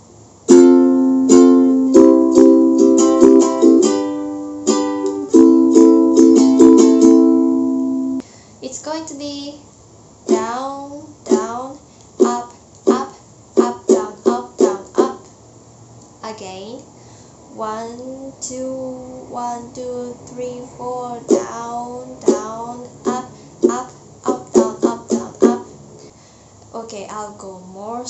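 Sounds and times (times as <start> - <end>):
ukulele strumming: 0.5 - 8.2, 10.3 - 10.7, 11.3 - 15.3, 19.4 - 25.7
woman speaking: 8.6 - 9.6, 16.2 - 16.9, 17.5 - 21.2, 26.7 - 28.0.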